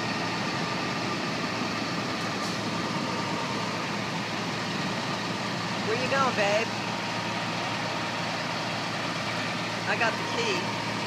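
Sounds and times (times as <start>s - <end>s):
fire engine motor running: 0.0s - 11.0s.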